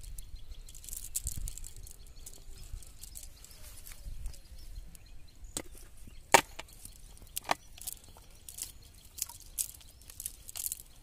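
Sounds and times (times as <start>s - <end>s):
net crackling and rustling: 6.4s - 11.0s.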